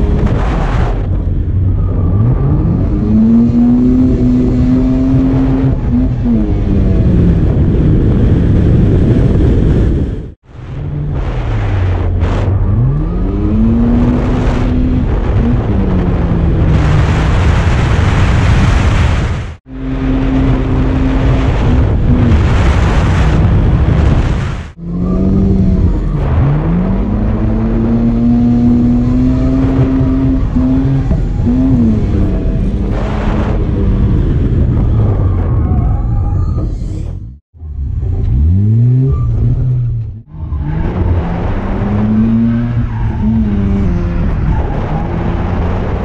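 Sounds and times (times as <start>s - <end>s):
tyre and wind noise: 0.0s - 46.0s
car engine revving hard: 24.8s - 34.8s.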